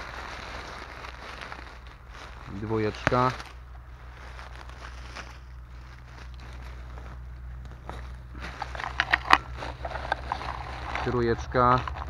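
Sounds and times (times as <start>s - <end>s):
low steady rumble: 0.0s - 12.0s
rustling of leaves and twigs: 0.0s - 12.0s.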